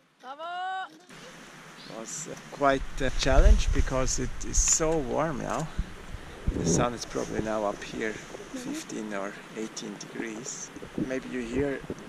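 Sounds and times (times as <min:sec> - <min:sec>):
steady hiss: 0:01.1 - 0:12.0.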